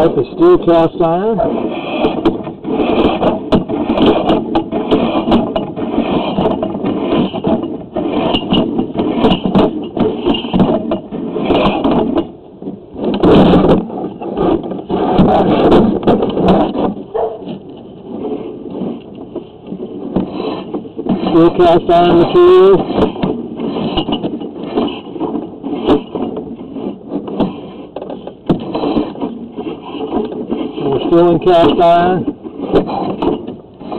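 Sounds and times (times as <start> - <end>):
cable scraping in metal drain: 0.0 - 33.9.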